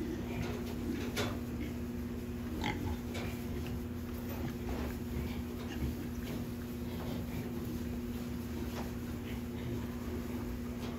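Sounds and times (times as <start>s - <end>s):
pig grunting: 0.0s - 7.8s
steady low hum: 0.0s - 10.9s.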